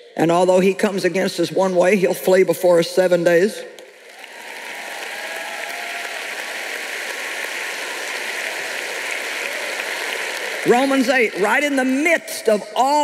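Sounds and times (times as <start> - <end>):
large audience applauding: 3.8 - 12.7.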